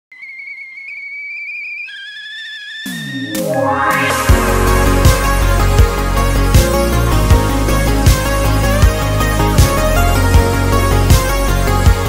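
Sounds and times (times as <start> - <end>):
kettle whistling: 0.1 - 5.0.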